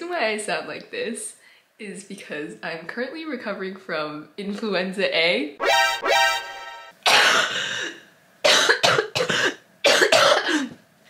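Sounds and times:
woman coughing: 7.1 - 7.9, 8.5 - 10.8.

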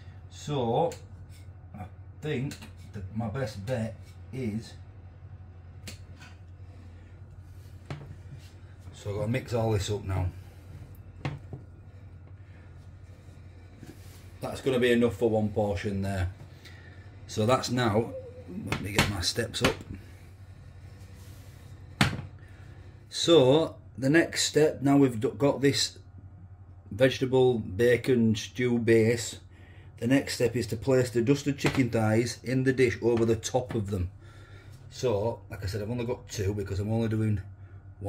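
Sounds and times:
low steady hum: 0.0 - 38.0.

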